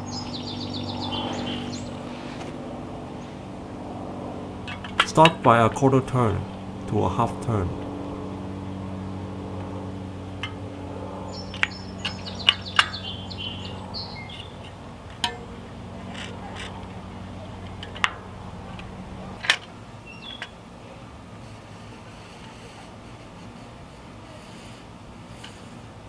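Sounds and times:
steady low hum: 4.9s - 9.3s, 15.6s - 19.5s
small birds chirping: 11.3s - 14.6s.

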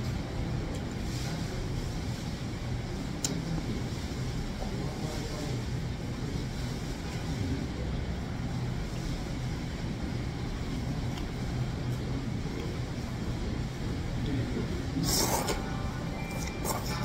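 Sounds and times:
constant hum: 0.0s - 17.0s.

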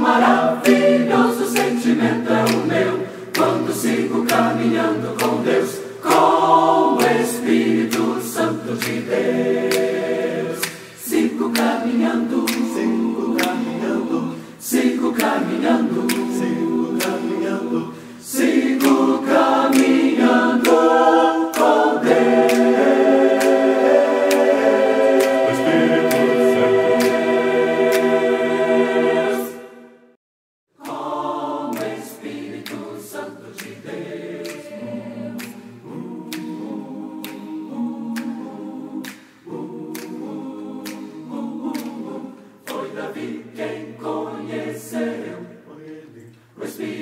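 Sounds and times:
sharp percussive clicks: 0.0s - 17.7s, 18.3s - 28.3s, 30.8s - 43.0s
mixed choir singing: 0.0s - 47.0s.

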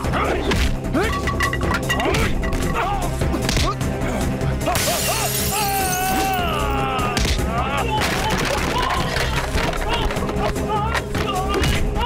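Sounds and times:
dramatic background music: 0.0s - 12.0s
glass shattering: 1.1s - 2.7s, 4.7s - 6.5s.

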